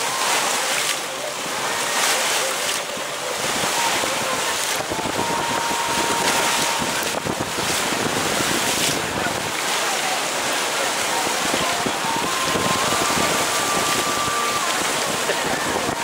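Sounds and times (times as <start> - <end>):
water rushing past hull: 0.0 - 16.0
wind buffeting microphone: 3.3 - 9.7, 11.1 - 16.0.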